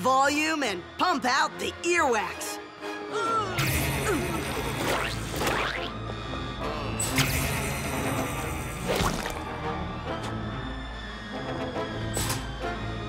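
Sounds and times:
cartoon music with low pulse: 0:02.8 - 0:13.0
whooshing squishy sound effects: 0:08.8 - 0:09.5.

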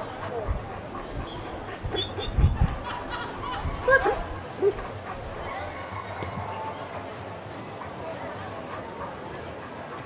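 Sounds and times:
dog yelping: 0:03.8 - 0:04.8.

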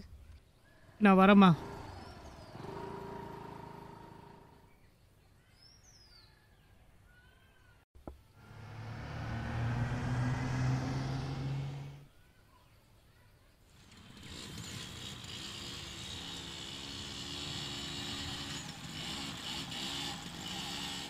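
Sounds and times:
vehicle engine hum: 0:01.2 - 0:04.8, 0:08.0 - 0:12.1, 0:13.7 - 0:21.0
bird chirps: 0:04.6 - 0:07.4.

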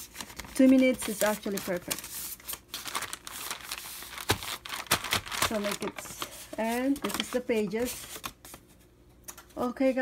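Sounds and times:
paper rustling and crinkling: 0:00.0 - 0:08.9.

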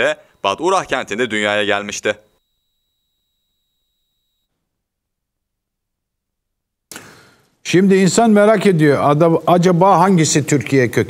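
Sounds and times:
faint high steady tone: 0:00.0 - 0:05.5.

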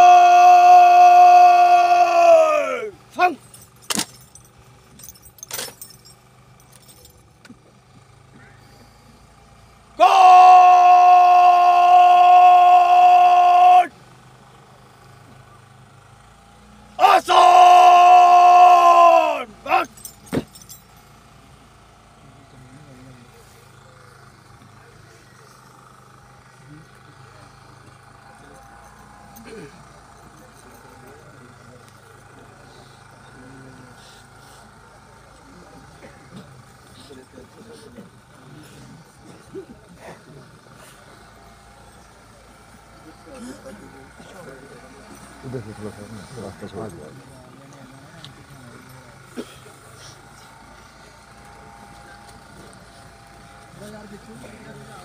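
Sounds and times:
shouted drill commands: 0:00.0 - 0:03.7, 0:09.7 - 0:14.2, 0:16.5 - 0:20.7
low steady background noise: 0:00.0 - 0:55.0.

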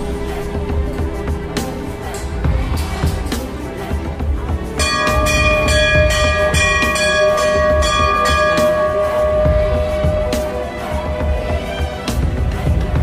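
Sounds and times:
background music with low beat: 0:00.0 - 0:13.0
temple bell ringing: 0:04.8 - 0:11.9.

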